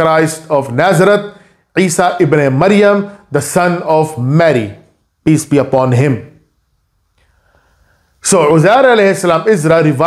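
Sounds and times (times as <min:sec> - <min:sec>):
man speaking: 0:00.0 - 0:06.4, 0:08.2 - 0:10.0
faint intake of breath: 0:07.1 - 0:08.2.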